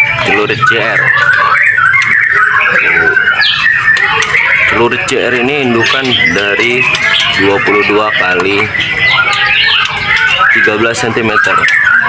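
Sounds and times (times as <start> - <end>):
songbirds chirping and warbling: 0.0 - 12.0.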